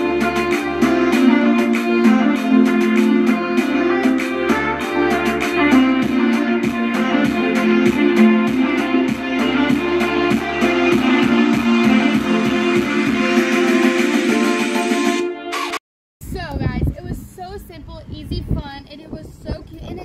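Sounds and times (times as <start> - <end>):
guitar-led background music: 0.0 - 15.7.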